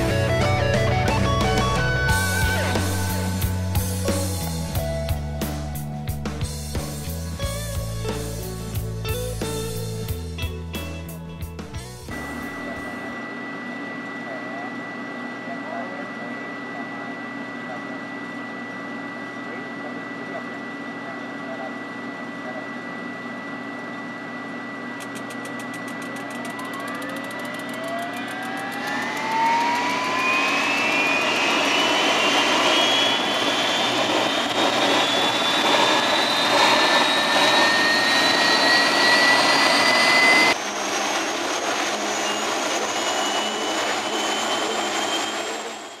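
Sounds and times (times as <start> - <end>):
helicopter turbine whine: 0.0 - 46.0.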